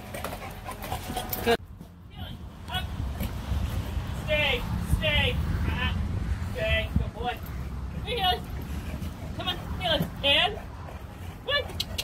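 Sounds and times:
dog panting: 0.0 - 1.6, 7.4 - 12.0.

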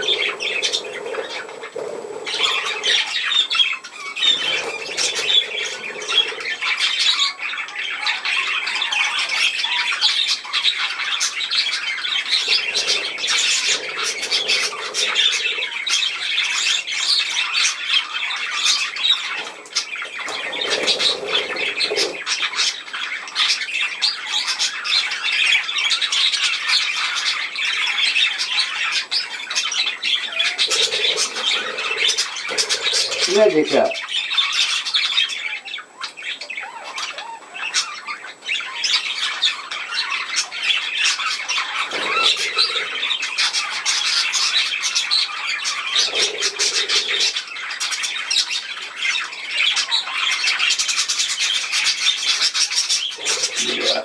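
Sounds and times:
budgerigars chattering: 0.0 - 54.0.

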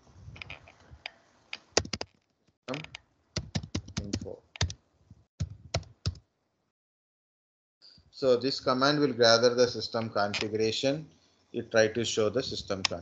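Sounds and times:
keyboard typing: 2.7 - 4.8, 5.4 - 6.2.

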